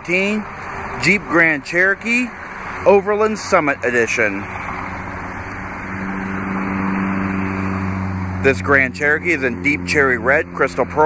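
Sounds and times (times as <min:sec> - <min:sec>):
engine humming steadily: 0:00.0 - 0:11.0.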